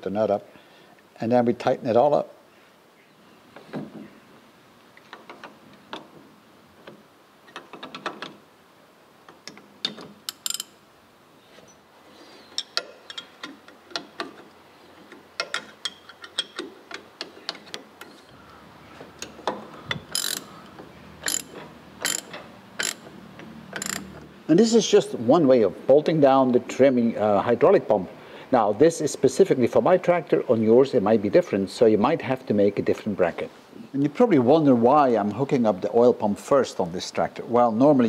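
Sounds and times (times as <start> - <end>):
metallic clicks of spanners: 10.3 - 10.7, 20.0 - 23.1, 23.7 - 24.2.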